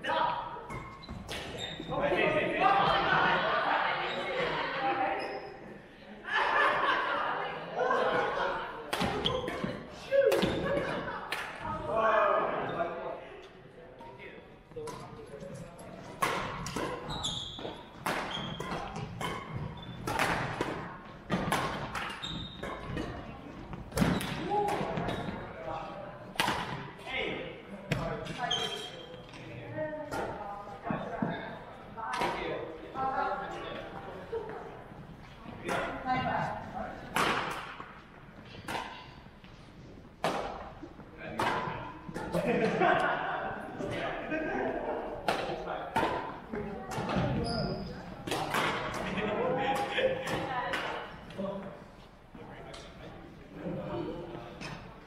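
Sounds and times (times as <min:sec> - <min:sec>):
people talking in a hall: 0:00.0 - 0:55.0
racket striking shuttlecock: 0:17.6 - 0:22.9.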